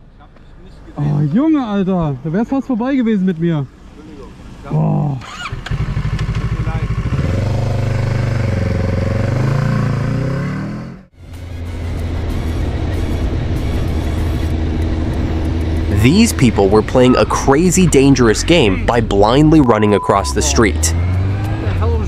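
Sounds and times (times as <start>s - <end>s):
road noise: 0.0s - 22.0s
motorcycle engine accelerating: 5.2s - 22.0s.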